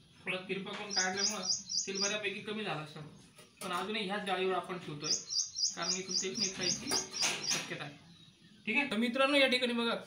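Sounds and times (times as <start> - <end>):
small bird chirping rapidly: 0.1 - 3.6, 4.7 - 8.9.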